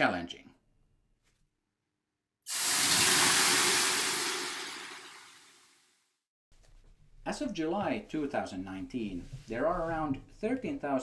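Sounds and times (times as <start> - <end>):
water hissing on hot sauna stones: 2.5 - 5.6.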